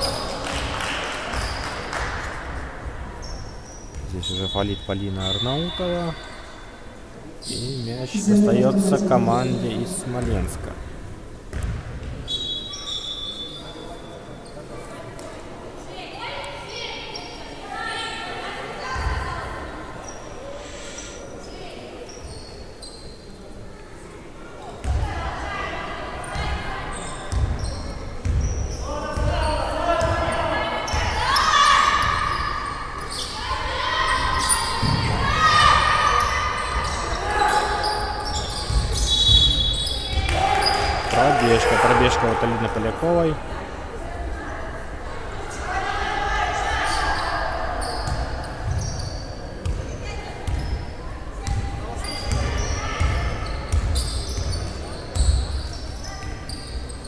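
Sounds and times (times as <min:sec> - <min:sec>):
players and coaches shouting: 0:07.6 - 0:10.8, 0:40.6 - 0:43.2.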